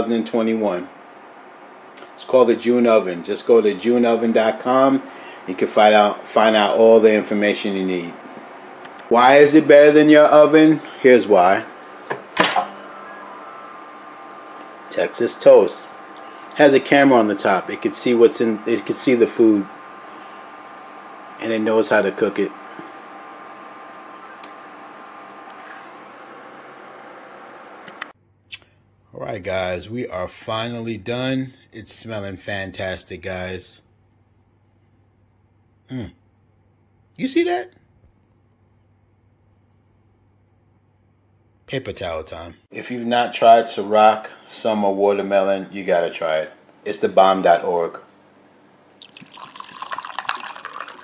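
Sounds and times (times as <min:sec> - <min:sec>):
appliance fan whining: 0:00.0 - 0:51.0
ice clinking in glass: 0:49.0 - 0:51.0
liquid pouring over ice: 0:49.0 - 0:51.0.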